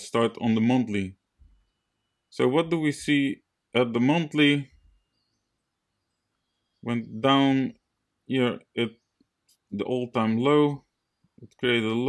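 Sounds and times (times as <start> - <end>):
man narrating: 0.0 - 1.2, 2.3 - 4.8, 6.8 - 9.0, 9.7 - 10.8, 11.4 - 12.0.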